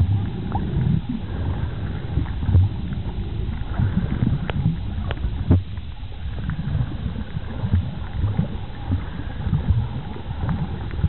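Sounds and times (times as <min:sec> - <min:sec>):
underwater rumble of moving water: 0:00.0 - 0:11.0
faint clicks: 0:02.2 - 0:06.6, 0:10.1 - 0:11.0.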